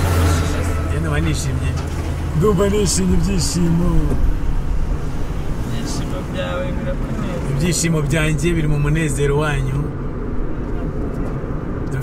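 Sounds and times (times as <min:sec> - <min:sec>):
car engine rumble: 0:00.0 - 0:12.0
road noise inside car: 0:00.0 - 0:12.0.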